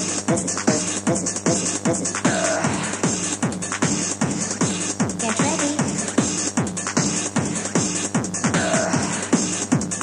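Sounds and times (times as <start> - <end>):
techno dance music: 0.0 - 10.0.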